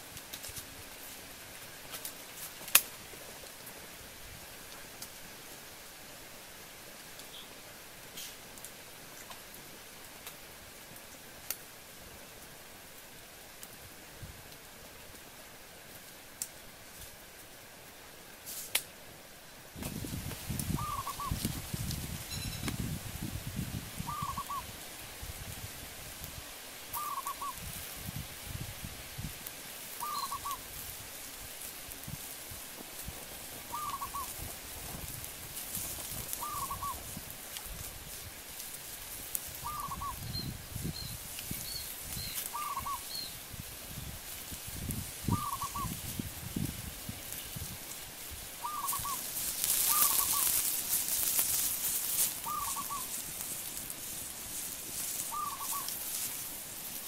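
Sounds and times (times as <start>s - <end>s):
faint high bird chirps: 7.3s - 7.5s, 22.3s - 22.7s, 27.0s - 27.6s, 30.0s - 30.6s, 39.6s - 43.4s, 48.6s - 49.2s, 52.4s - 53.1s, 55.3s - 55.9s
loud hiss: 19.7s - 57.0s
bird repeating short call: 20.8s - 21.4s, 24.0s - 24.6s, 27.0s - 27.6s, 30.0s - 30.6s, 33.7s - 34.3s, 36.4s - 37.0s, 39.6s - 40.2s, 42.5s - 43.3s, 45.3s - 45.9s, 48.6s - 49.2s, 52.4s - 53.1s, 55.3s - 55.9s.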